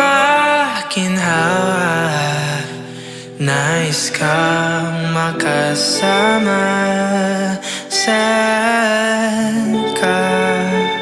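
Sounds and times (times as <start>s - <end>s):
man singing long notes: 0.0s - 11.0s
instrumental backing: 1.4s - 11.0s.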